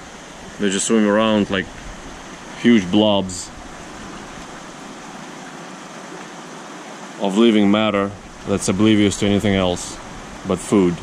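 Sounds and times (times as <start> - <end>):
aquarium water circulation rushing: 0.0 - 11.0.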